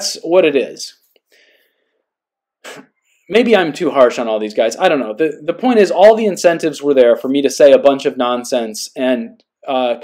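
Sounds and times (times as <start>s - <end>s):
man breathing: 1.2s - 3.3s
sharp intake of breath: 1.3s - 2.0s, 2.6s - 2.9s.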